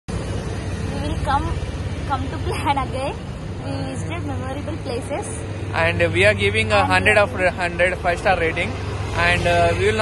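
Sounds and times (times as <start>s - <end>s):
vehicle engine humming: 0.1s - 10.0s.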